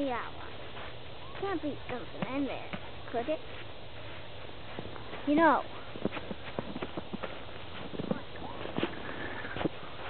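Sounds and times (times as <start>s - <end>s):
snow crunching: 0.0s - 10.0s.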